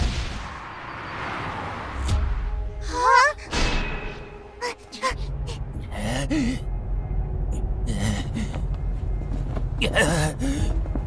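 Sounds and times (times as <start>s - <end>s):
character gasping and groaning: 5.5s - 6.7s, 9.9s - 10.7s.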